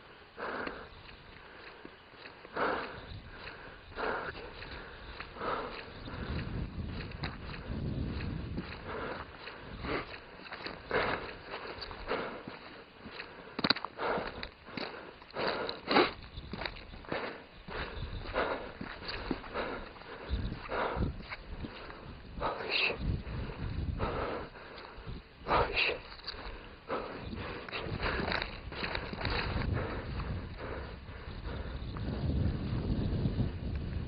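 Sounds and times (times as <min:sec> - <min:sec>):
person breathing close to microphone: 0:00.0 - 0:33.4
dull low thumps: 0:02.6 - 0:12.4, 0:26.5 - 0:34.0.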